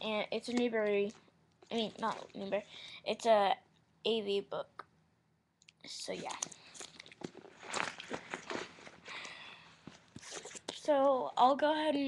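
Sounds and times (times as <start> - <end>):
book pages rustling: 0.4 - 2.5, 6.1 - 9.2, 9.8 - 11.0.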